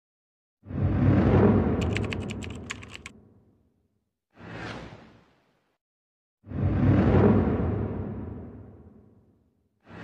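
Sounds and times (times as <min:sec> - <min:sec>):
typing-style key clicks: 0:01.8 - 0:03.1.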